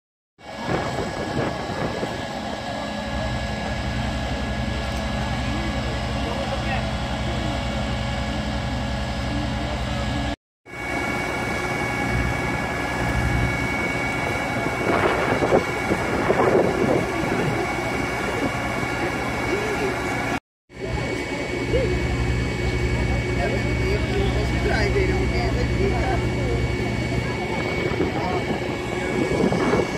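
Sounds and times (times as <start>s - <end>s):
diesel engine running: 0.4s - 29.9s
steady high whine: 0.4s - 29.9s.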